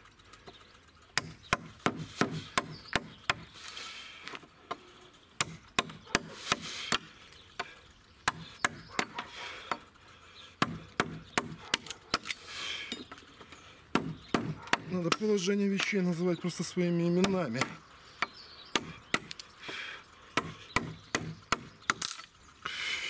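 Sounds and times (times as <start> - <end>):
mallet striking gouge into wood: 1.2 - 3.4, 10.6 - 12.2, 13.9 - 15.3, 20.4 - 22.0.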